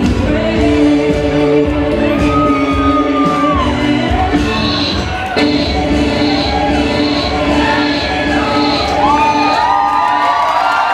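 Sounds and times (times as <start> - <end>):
loud dance music: 0.0 - 10.9
crowd cheering and whooping: 2.0 - 10.9.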